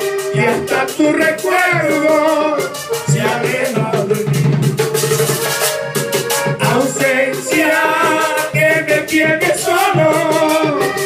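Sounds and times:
button accordion melody: 0.0 - 11.0
hand drum: 0.0 - 11.0
metal scraper rhythm: 0.0 - 11.0.

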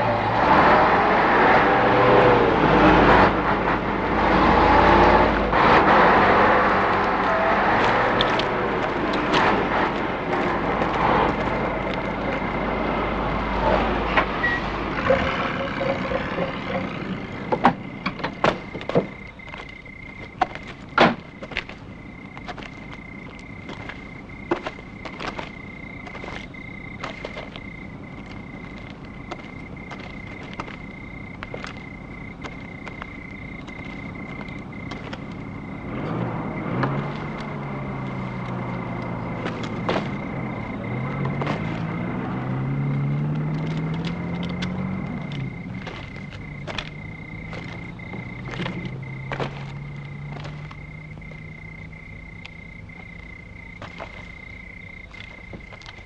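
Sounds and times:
vehicle engine revving: 0.0 - 19.3, 23.7 - 54.3
high insect chirr: 0.0 - 56.0.

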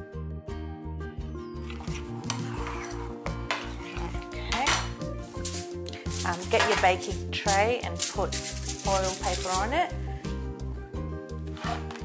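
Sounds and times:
metal spoon scraping bowl: 1.6 - 9.9, 11.5 - 12.0.

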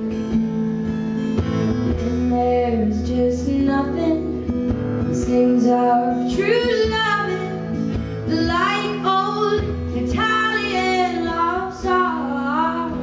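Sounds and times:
acoustic guitar: 0.0 - 13.0
woman singing a slow ballad: 2.0 - 13.0.

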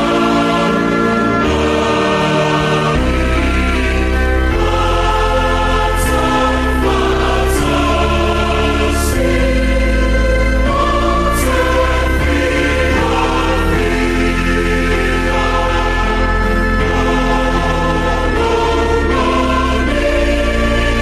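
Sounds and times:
choir singing a hymn: 0.0 - 21.0
low steady accompaniment: 0.0 - 21.0.

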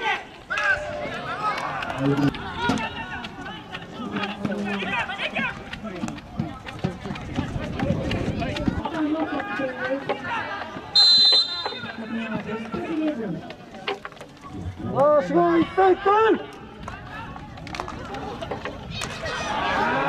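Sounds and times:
people talking over one another: 0.0 - 20.0.

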